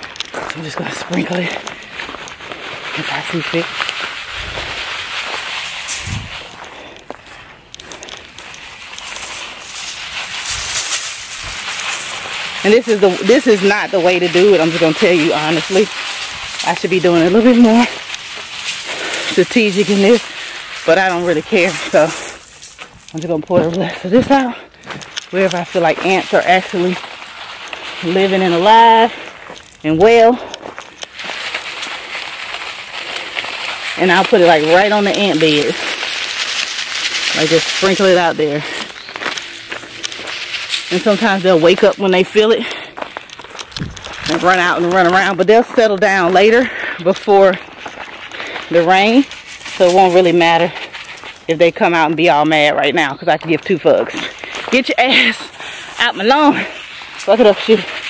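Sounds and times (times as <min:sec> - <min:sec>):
granules pouring from plastic bag: 0:01.6 - 0:07.1, 0:07.8 - 0:23.2, 0:25.0 - 0:29.8, 0:30.5 - 0:45.2.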